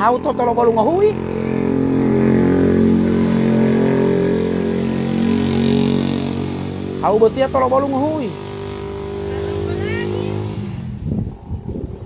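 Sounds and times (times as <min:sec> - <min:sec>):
engine running steadily: 0:00.0 - 0:12.0.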